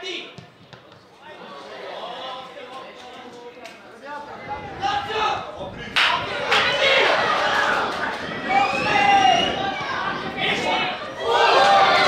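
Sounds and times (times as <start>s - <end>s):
players shouting: 4.7s - 12.0s.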